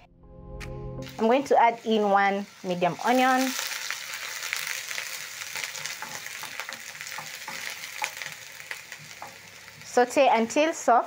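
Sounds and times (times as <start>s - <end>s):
onion sizzling in oil: 1.0s - 11.0s.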